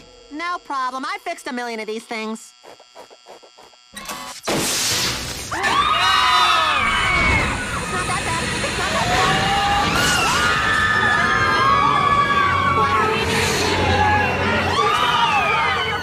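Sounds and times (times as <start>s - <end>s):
voices screaming: 5.5s - 16.0s.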